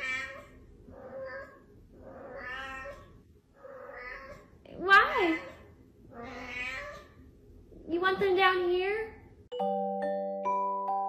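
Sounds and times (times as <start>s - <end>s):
cat meowing: 0.0s - 4.5s, 5.1s - 7.2s.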